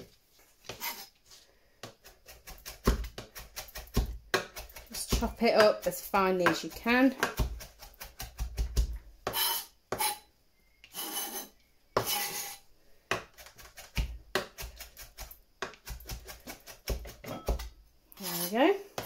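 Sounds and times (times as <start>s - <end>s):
knife blade scraping board: 0.6s - 1.2s, 9.3s - 12.6s, 18.2s - 18.7s
knife chopping on plastic board: 1.8s - 10.1s, 13.1s - 17.7s.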